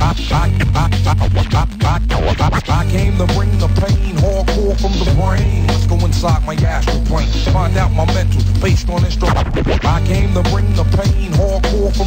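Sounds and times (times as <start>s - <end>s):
hip hop music with heavy bass: 0.0s - 12.0s
turntable scratching: 0.0s - 12.0s.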